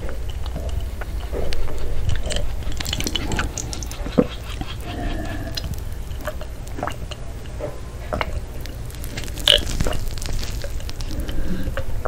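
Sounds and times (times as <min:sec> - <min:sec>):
person gulping a drink: 0:00.0 - 0:12.0.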